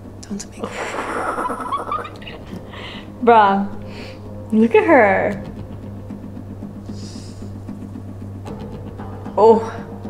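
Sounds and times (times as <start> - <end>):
low drone with faint pulse: 0.0 - 10.0.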